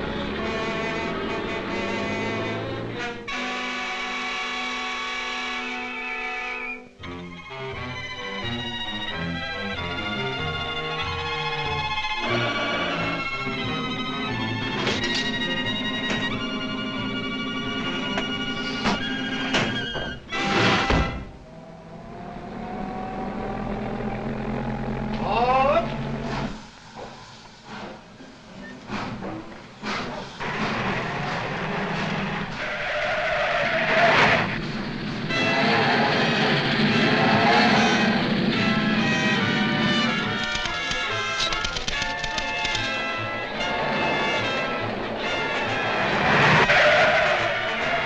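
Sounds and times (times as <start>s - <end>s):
low rumble with hiss: 21.1s - 32.5s
faint rising tone: 21.3s - 27.3s.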